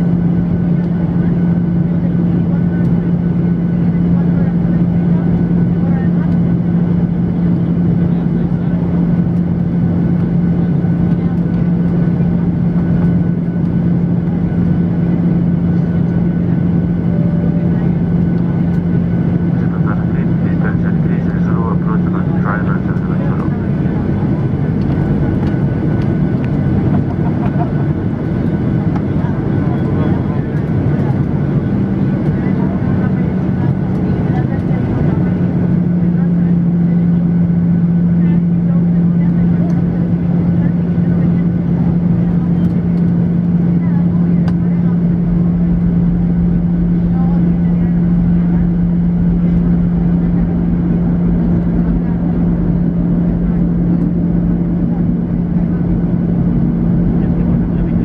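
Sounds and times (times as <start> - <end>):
jet cabin engine and airflow noise: 0.0 - 58.0.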